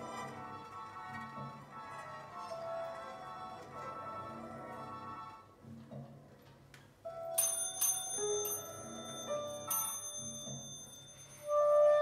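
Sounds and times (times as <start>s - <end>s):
bell-like metallic strikes: 7.4s - 11.7s.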